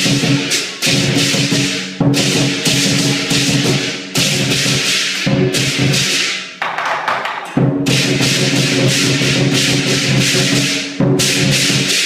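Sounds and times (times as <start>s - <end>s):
cymbals: 0.0s - 12.0s
drum: 0.0s - 12.0s.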